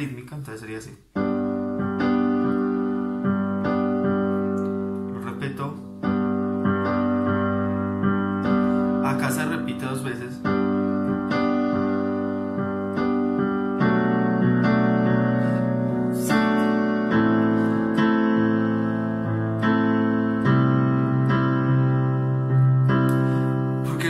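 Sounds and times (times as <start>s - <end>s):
electronic keyboard piano chords: 1.0s - 24.0s.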